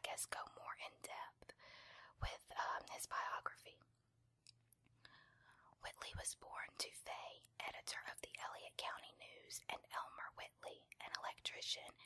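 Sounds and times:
person whispering: 0:00.0 - 0:01.5, 0:02.2 - 0:03.8, 0:05.8 - 0:12.0.

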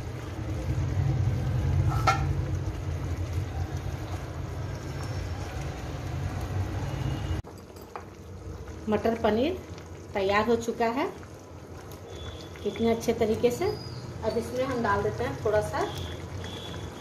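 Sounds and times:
thick gravy boiling in a pan: 0:00.0 - 0:17.0
ladle knocking against pan: 0:01.9 - 0:02.4.

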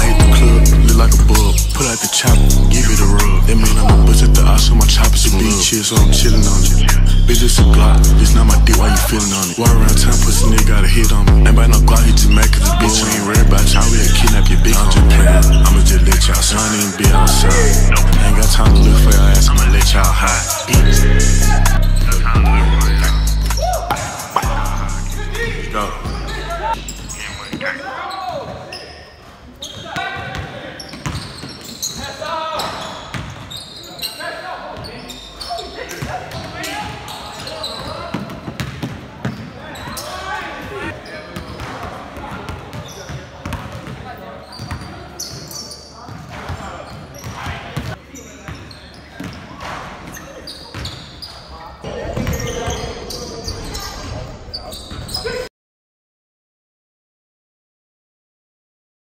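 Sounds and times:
players calling out: 0:00.0 - 0:55.5
sneakers squeaking: 0:00.0 - 0:55.5
basketball bouncing: 0:29.8 - 0:31.7, 0:33.1 - 0:33.5, 0:37.8 - 0:39.5, 0:43.4 - 0:44.0, 0:52.0 - 0:52.9
basketball bouncing on hardwood: 0:38.1 - 0:39.4.

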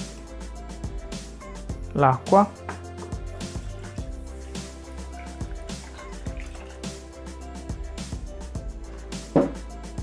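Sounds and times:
background music with steady beat: 0:00.0 - 0:10.0
water pouring into metal bowl: 0:04.0 - 0:07.4.

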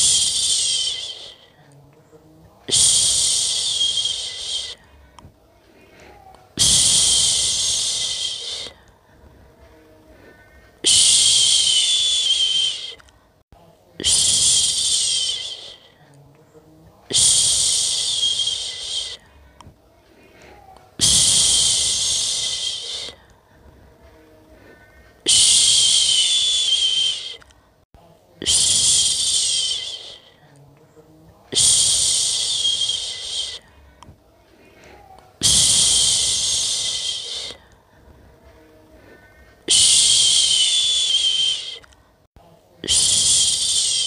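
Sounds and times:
person shushing: 0:00.0 - 0:01.7, 0:02.7 - 0:05.0, 0:05.8 - 0:08.9, 0:14.0 - 0:16.1, 0:17.1 - 0:19.3, 0:20.2 - 0:23.3, 0:28.4 - 0:30.5, 0:31.5 - 0:33.7, 0:34.7 - 0:37.7, 0:38.9 - 0:41.9, 0:42.8 - 0:44.0.

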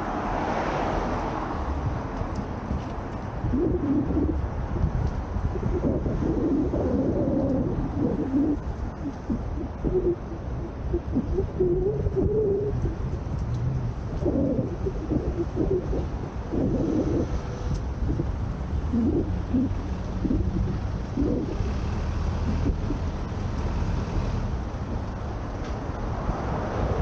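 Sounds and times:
road traffic: 0:00.0 - 0:27.0
wind buffeting microphone: 0:01.3 - 0:27.0.

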